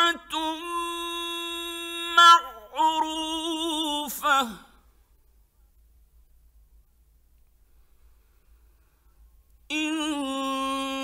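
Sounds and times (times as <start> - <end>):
man reciting: 0.0 - 4.9, 9.7 - 11.0
faint low hum: 0.0 - 11.0.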